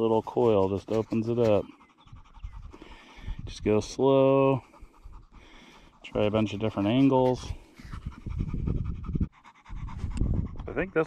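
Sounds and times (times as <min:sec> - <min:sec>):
rough rumbling on microphone: 0:00.0 - 0:04.0, 0:06.0 - 0:11.0.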